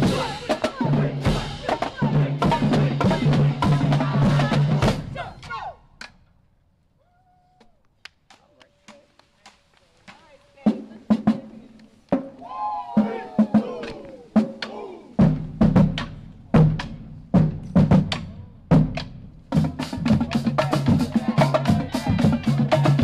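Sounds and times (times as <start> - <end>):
bass drums: 0.0 - 5.5, 10.7 - 23.0
snare drums: 0.0 - 6.3, 8.2 - 23.0.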